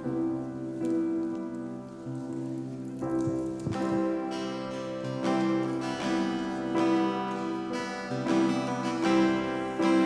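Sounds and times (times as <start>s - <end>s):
acoustic guitar: 0.0s - 10.0s
grand piano chords: 0.0s - 10.0s.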